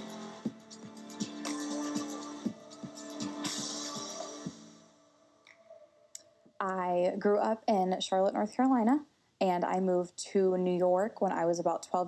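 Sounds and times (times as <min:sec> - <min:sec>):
background music: 0:00.0 - 0:06.1
woman speaking: 0:06.6 - 0:12.0.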